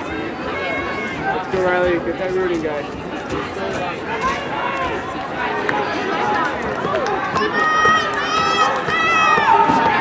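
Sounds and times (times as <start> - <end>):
spectators cheering: 4.1 - 10.0.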